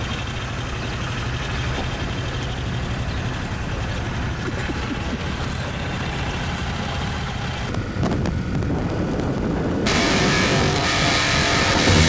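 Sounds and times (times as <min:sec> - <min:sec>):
motorcycle engines running: 0:00.0 - 0:12.0
wind on microphone: 0:07.7 - 0:12.0.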